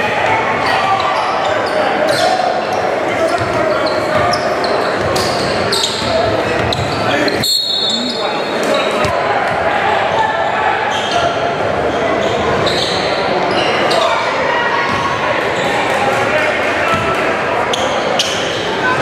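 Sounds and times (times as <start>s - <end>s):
spectators chattering: 0.0s - 19.0s
basketball bouncing on wooden court: 6.0s - 7.0s.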